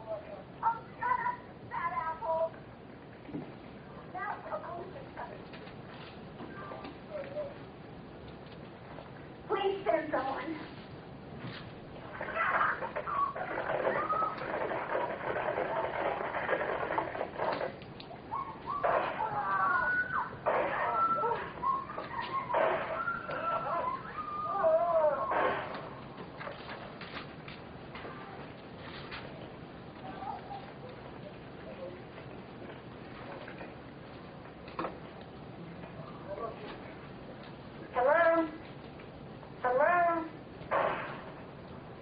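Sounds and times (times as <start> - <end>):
faint telephone line noise: 0.0 - 42.0.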